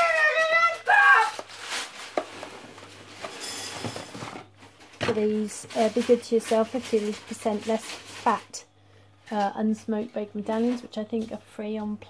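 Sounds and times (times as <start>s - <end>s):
young child calling out: 0.0s - 1.4s.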